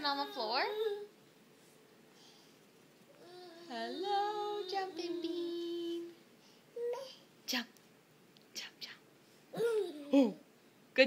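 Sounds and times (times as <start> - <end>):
person whispering: 8.6 - 9.0.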